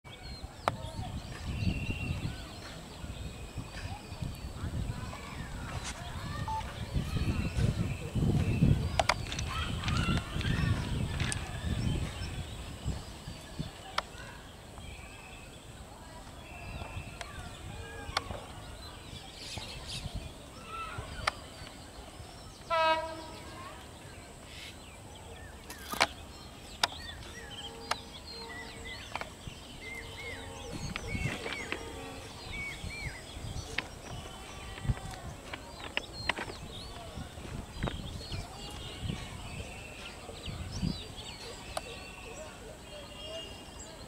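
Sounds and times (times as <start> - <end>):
locomotive horn blast: 22.7 - 23.6.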